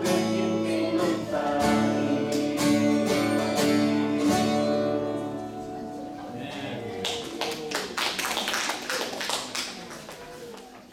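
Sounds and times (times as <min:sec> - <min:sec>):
acoustic guitar strummed chord: 0:00.0 - 0:06.3.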